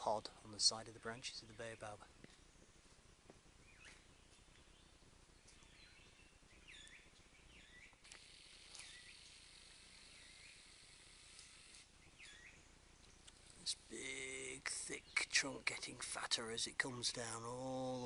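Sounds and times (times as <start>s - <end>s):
steady high hiss: 0.0s - 18.0s
faint bird chirps: 3.6s - 18.0s.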